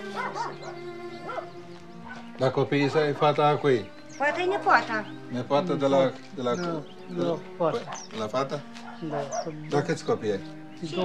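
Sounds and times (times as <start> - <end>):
soft background music: 0.0 - 11.0
dog barking yelps: 0.1 - 2.2.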